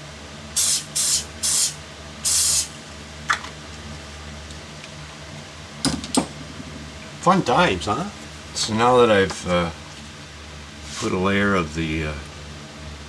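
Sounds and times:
fan humming: 0.0s - 13.0s
pump bottle hissing sprays: 0.6s - 2.8s.

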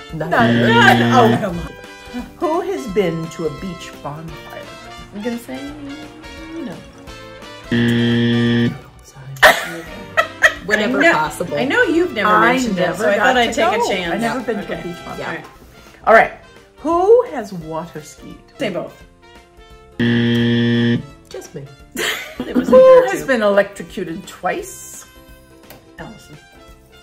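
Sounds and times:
soft background music: 0.0s - 27.0s
low wrong-answer buzzer: 0.4s - 1.5s, 7.7s - 8.8s, 20.0s - 21.2s.

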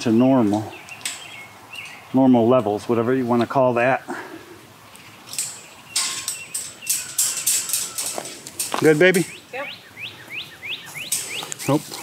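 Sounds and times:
small bird chirping: 0.6s - 2.2s, 4.9s - 12.0s.

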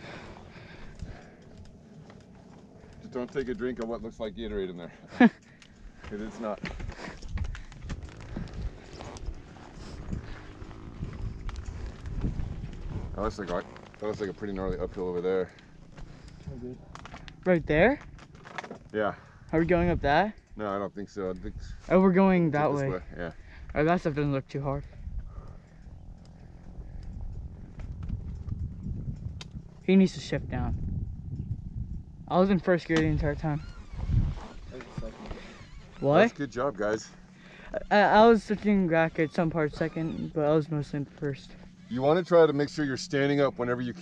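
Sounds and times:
faint clicks: 0.0s - 12.8s, 24.8s - 29.9s
dirt bike engine idling: 0.0s - 44.0s
man speaking: 19.0s - 23.4s.

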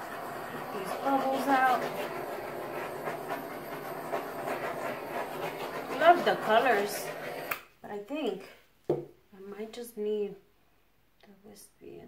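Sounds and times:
butane torch hissing: 0.0s - 7.6s.

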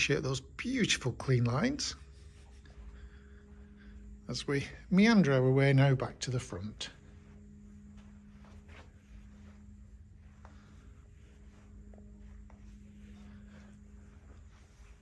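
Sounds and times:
low hum: 0.0s - 15.0s
footsteps on carpet: 1.3s - 15.0s.

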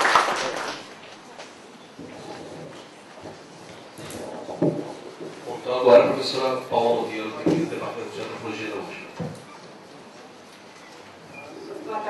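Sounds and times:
microphone handling: 2.0s - 6.3s.

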